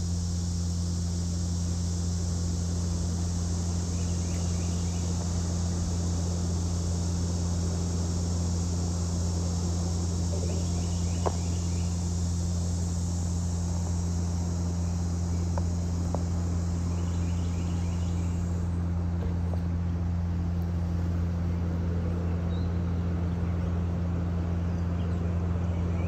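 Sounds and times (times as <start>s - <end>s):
high hiss: 0.0s - 22.8s
low hum: 0.0s - 26.0s.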